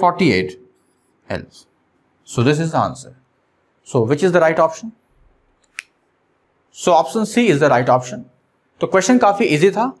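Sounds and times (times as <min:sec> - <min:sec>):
man speaking: 0:00.0 - 0:03.2, 0:03.8 - 0:05.0, 0:06.7 - 0:10.0.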